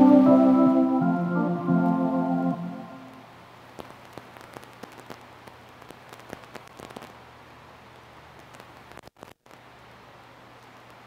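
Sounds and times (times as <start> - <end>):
held organ notes: 0.0 - 3.2
low steady hum: 0.0 - 11.0
faint irregular clicks and ticks: 3.8 - 7.2, 8.4 - 9.6.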